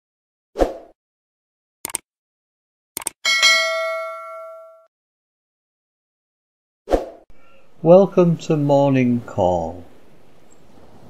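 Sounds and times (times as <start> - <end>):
notification bell ding: 3.3 - 4.9.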